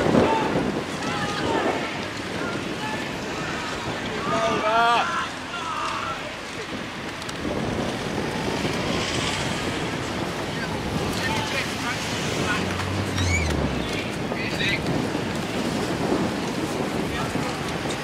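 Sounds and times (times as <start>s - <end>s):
wind buffeting microphone: 0.0s - 18.0s
river ambience: 10.7s - 14.4s.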